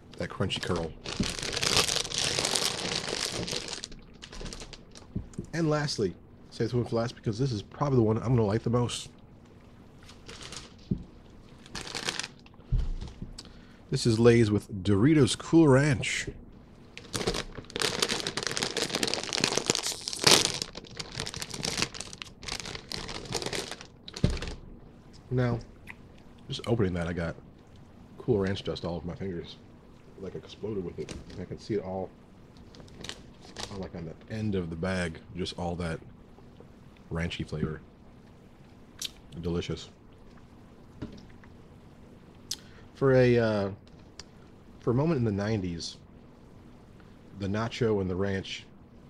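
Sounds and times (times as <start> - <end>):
plastic chip bag crinkling: 0.3 - 5.1, 10.0 - 13.2, 16.9 - 24.6, 32.6 - 34.0.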